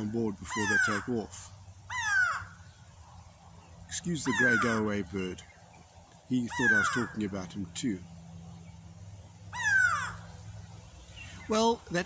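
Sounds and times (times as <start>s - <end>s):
bird call falling in pitch: 6.4s - 7.3s, 9.5s - 10.3s.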